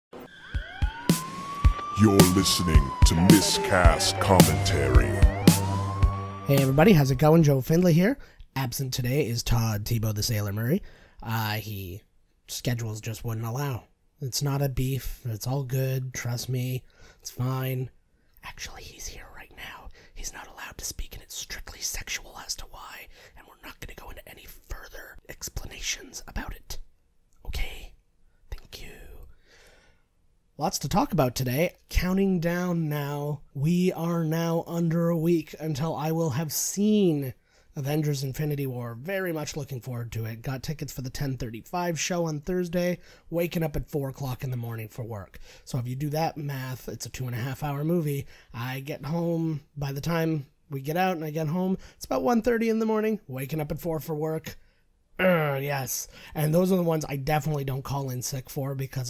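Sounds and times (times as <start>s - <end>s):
rising siren-like tone: 0.1s - 7.5s.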